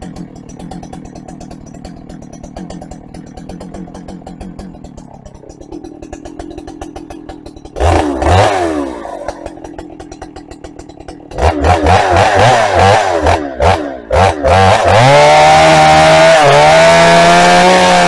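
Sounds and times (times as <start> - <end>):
chainsaw idling and revving: 0.0 - 18.0.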